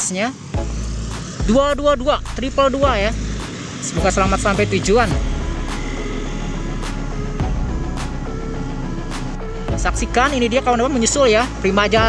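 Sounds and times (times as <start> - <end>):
faint background music: 0.0 - 12.0
car and motorcycle engines rumbling: 0.1 - 12.0.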